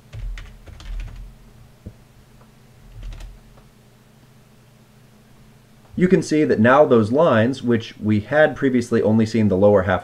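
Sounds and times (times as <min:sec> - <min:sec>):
computer keyboard typing: 0:00.0 - 0:01.4, 0:02.9 - 0:03.4.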